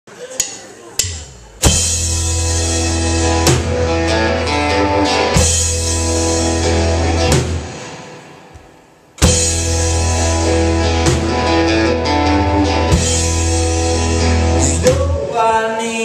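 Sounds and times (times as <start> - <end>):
rock band playing: 0.4 - 15.6.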